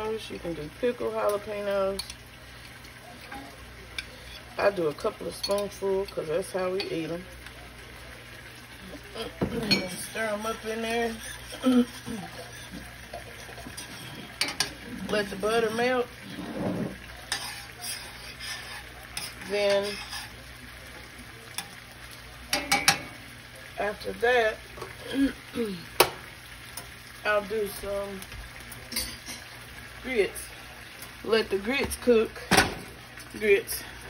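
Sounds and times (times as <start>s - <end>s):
saucepan simmering bubbling: 0.0s - 34.0s
liquid swishing in saucepan: 8.0s - 22.6s
spoon clinking on saucepan: 9.4s - 10.2s, 22.5s - 23.2s.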